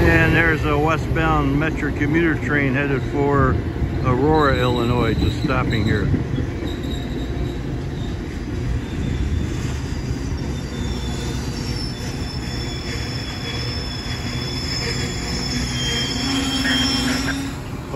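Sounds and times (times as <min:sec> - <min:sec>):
train wheels rumbling on rail: 0:00.0 - 0:17.9
high brake squeals: 0:04.5 - 0:17.9.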